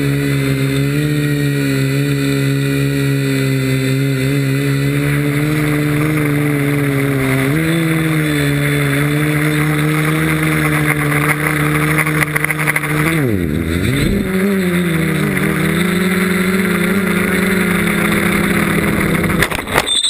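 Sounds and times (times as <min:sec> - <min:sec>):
drone propellers buzzing: 0:00.0 - 0:20.0.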